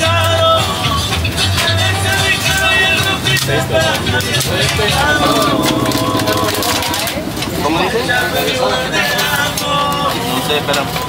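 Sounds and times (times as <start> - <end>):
music: 0.0 - 11.0
voices: 0.0 - 11.0.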